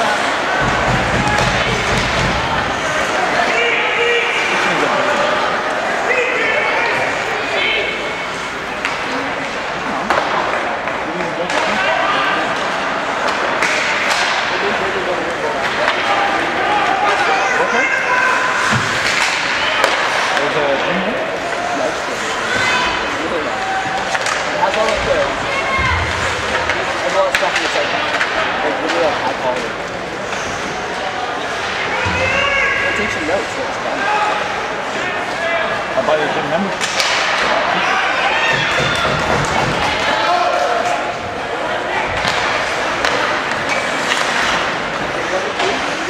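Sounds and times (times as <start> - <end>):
voices calling out in arena: 0.0 - 46.0
slams against hockey boards: 0.6 - 2.6, 38.5 - 40.0.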